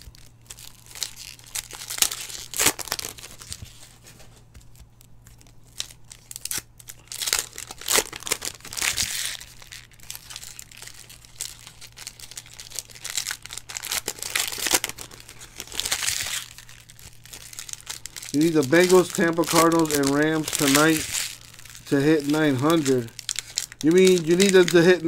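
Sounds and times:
foil wrapper crinkling and tearing: 0.0 - 25.0.

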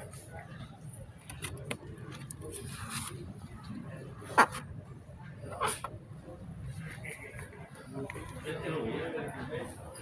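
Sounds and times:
faint background voices: 0.0 - 10.0
low murmur of room noise: 0.0 - 10.0.

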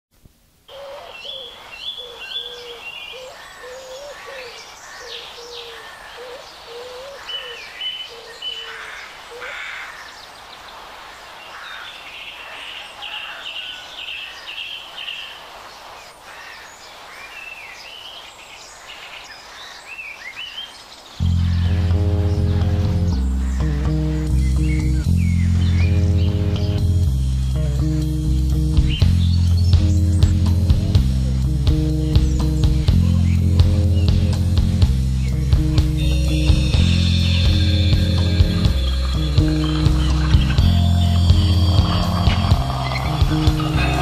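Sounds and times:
birds chirping and warbling: 0.7 - 44.0
band music with deep bass: 21.2 - 44.0.

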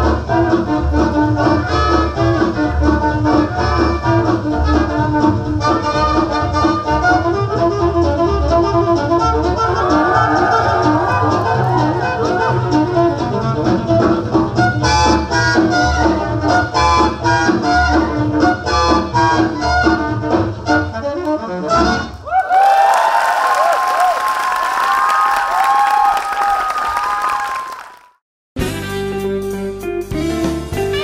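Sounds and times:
swing music: 0.0 - 22.2, 28.6 - 31.0
audience applause and cheering: 9.2 - 14.4, 22.2 - 28.2.

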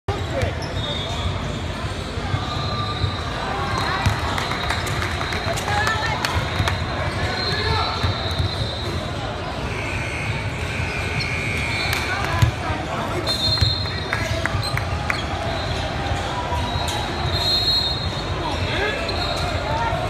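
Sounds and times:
sneakers squeaking: 0.1 - 20.0
voices chattering: 0.1 - 20.0.

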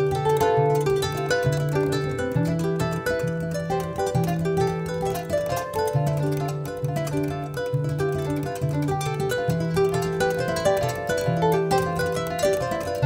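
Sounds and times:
plucked kora strings: 0.0 - 13.0.

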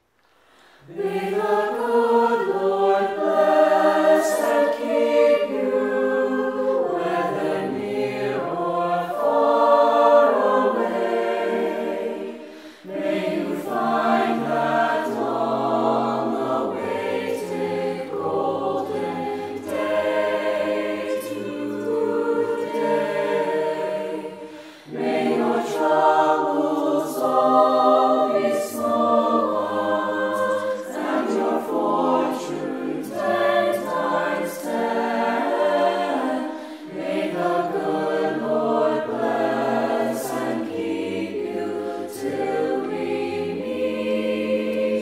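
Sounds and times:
mixed choir singing in harmony: 0.6 - 45.0.

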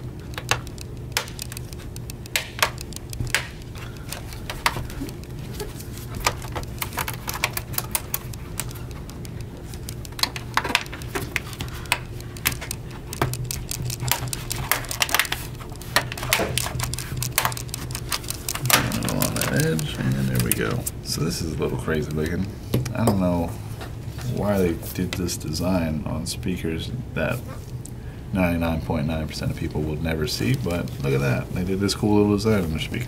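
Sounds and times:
plastic clips snapping: 0.0 - 21.0.

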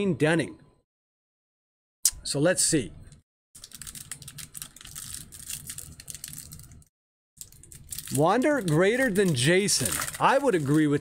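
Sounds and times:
foil wrapper crinkling and tearing: 3.6 - 11.0.

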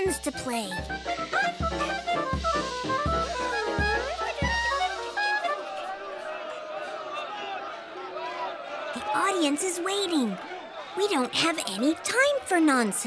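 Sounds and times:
cartoon music with drums and trumpet: 0.0 - 6.0
low drum beats: 0.1 - 5.2.

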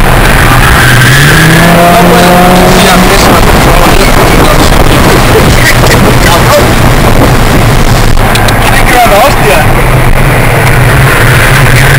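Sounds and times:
car engine running: 0.0 - 11.9
rushing wind and road noise: 0.0 - 11.9
voice: 1.7 - 6.8, 8.5 - 9.8.

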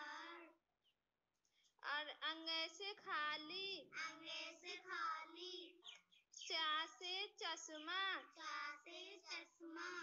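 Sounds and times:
child singing a chant: 0.0 - 0.5, 3.8 - 10.0.

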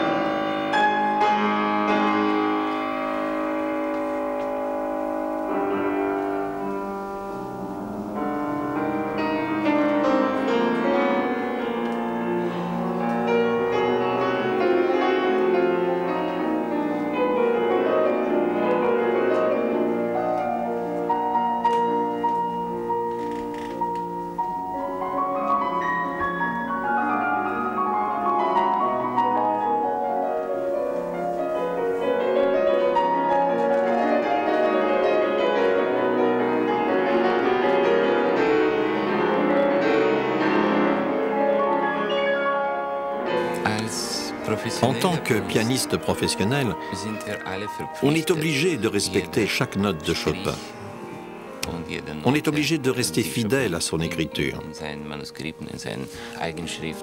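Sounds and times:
solo grand piano: 0.0 - 57.0.

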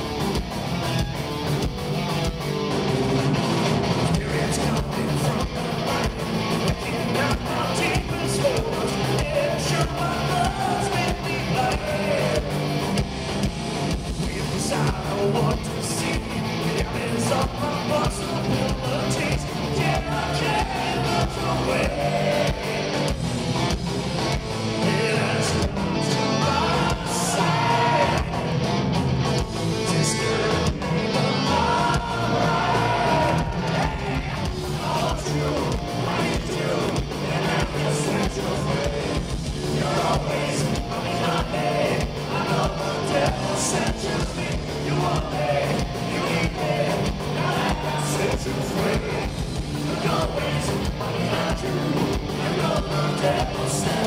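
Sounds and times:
electric guitars: 0.0 - 54.0
pounding drum beat: 0.0 - 54.0
man singing: 4.0 - 12.6, 14.2 - 23.0, 24.8 - 28.6, 29.8 - 54.0.

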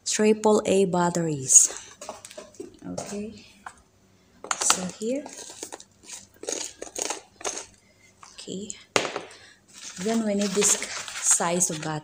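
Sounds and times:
peppercorns rattling in pepper mill: 4.4 - 8.4, 9.7 - 12.0.

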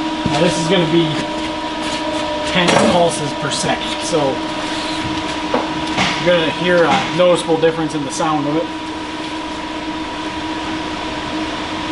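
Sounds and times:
steady mechanical hum: 0.0 - 11.9.

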